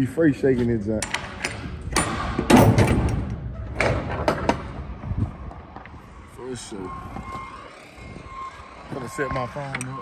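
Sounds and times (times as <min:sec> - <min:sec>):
vehicle backup alarm beeping: 0:06.0 - 0:10.0.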